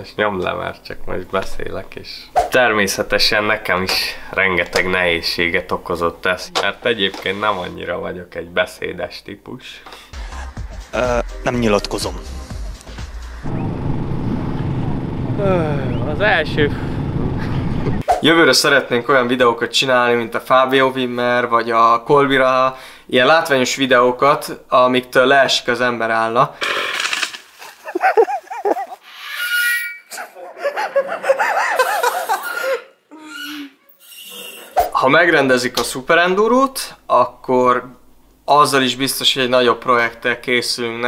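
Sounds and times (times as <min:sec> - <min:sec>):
man talking: 0:00.0 - 0:09.9, 0:10.9 - 0:12.3, 0:15.4 - 0:16.8, 0:18.1 - 0:26.6, 0:34.8 - 0:41.0
motorcycle engines running: 0:13.5 - 0:18.0
low voiced sound: 0:15.2 - 0:17.0
person laughing: 0:17.4 - 0:18.0, 0:27.6 - 0:29.1, 0:30.2 - 0:33.4.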